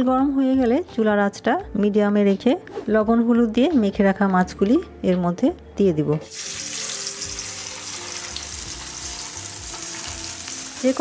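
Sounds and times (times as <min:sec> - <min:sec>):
fish sizzling in hot oil: 0:06.3 - 0:11.0.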